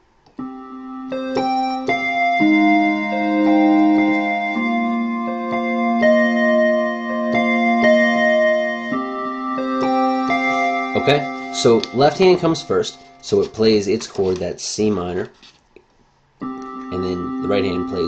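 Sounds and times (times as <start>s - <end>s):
repeated synth lead notes: 0.4s - 13.8s, 16.4s - 18.0s
synth keyboard chords: 0.4s - 14.4s, 16.4s - 18.0s.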